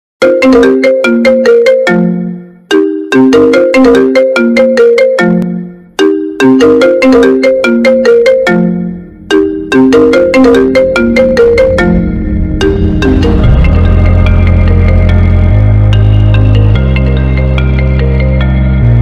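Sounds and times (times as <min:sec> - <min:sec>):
marimba-like ringtone melody: 0:00.2 - 0:18.9
low rumble: 0:10.7 - 0:17.7.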